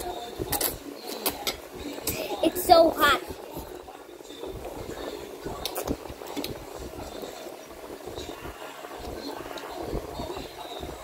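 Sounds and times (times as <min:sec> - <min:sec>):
child slurping and chewing noodles: 0:04.4 - 0:10.8.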